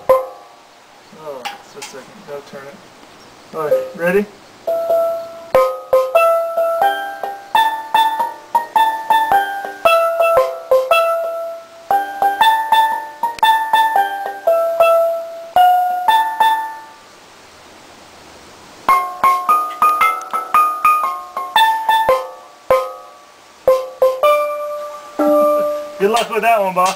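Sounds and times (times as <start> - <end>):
steelpan melody played with mallets: 0.0 - 0.7, 3.6 - 17.1, 18.9 - 26.6.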